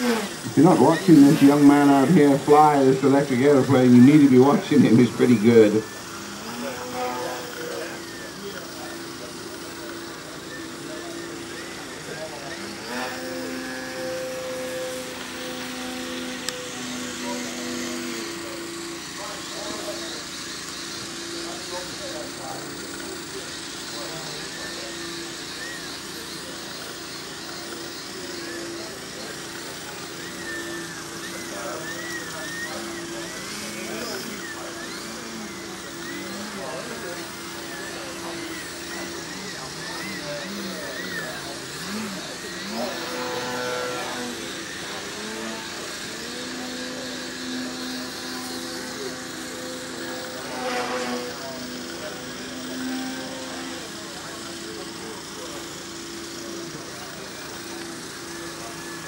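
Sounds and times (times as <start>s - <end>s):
steady low hum: 0.0s - 27.0s
electric model plane motor whine: 0.0s - 59.0s.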